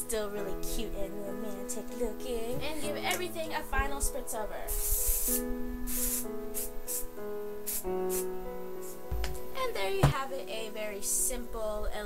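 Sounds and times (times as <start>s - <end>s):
soft background music: 0.0s - 12.0s
hairspray can hissing: 4.6s - 9.2s.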